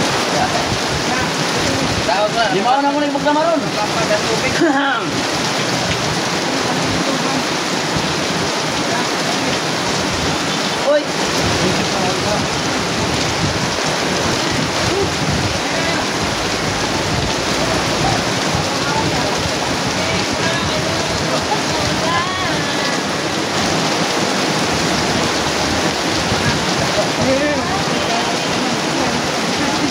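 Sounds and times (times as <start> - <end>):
loud rushing noise: 9.9 - 29.9
faint voices: 14.4 - 29.9.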